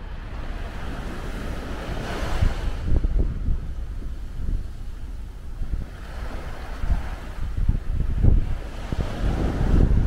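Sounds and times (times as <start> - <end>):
small waves breaking on sand: 0.0 - 10.0
wind buffeting microphone: 0.0 - 10.0.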